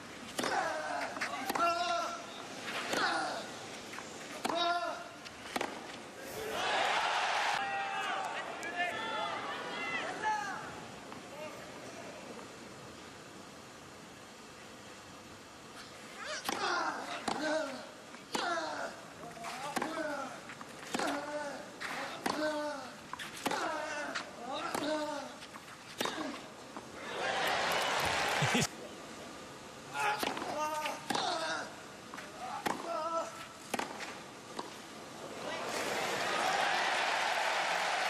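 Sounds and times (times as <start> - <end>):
crowd cheering: 6.3 - 10.2, 27.0 - 28.7, 35.2 - 38.0
crowd applause: 27.0 - 28.7, 35.4 - 38.0.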